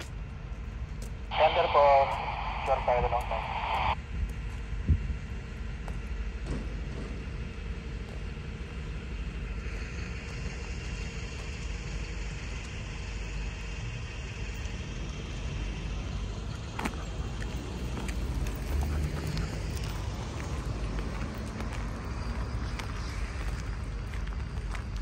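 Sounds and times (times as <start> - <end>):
road traffic: 0.0 - 25.0.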